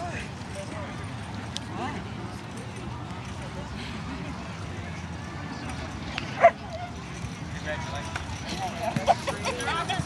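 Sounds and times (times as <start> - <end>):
faint voices: 0.0 - 10.0
outdoor background noise: 0.0 - 10.0.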